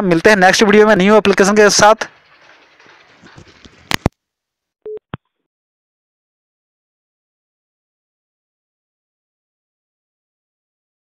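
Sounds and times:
brief low beep: 4.9 - 5.2.

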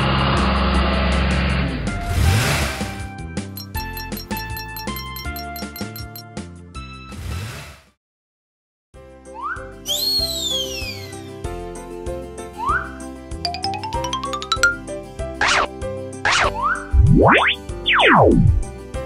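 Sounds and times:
rising run of plinks: 3.6 - 6.2, 13.5 - 15.7
children's background music: 12.1 - 18.9
long rising and falling sweeps: 15.4 - 15.7, 16.3 - 18.7
rising boings: 15.4 - 15.7, 16.3 - 18.6.

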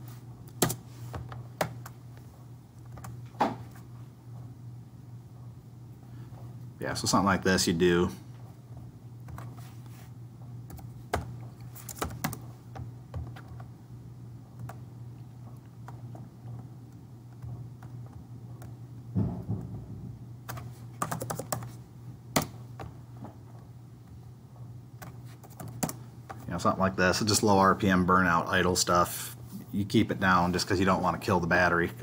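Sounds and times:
steady low hum: 0.0 - 32.0
computer keyboard typing: 10.7 - 13.7, 14.6 - 14.8, 20.5 - 21.8, 25.0 - 26.0.

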